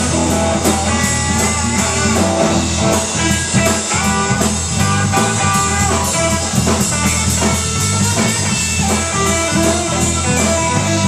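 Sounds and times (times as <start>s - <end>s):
blues-rock band playing: 0.0s - 11.0s.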